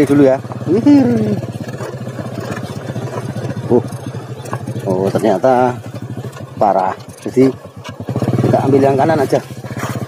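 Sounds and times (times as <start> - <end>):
small motorcycle engine running: 0.0 - 10.0.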